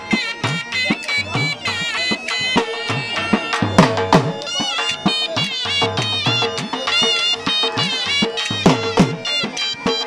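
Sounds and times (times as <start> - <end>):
drum beating steady rhythm: 0.0 - 10.0
shrill reed pipe melody: 0.0 - 10.0.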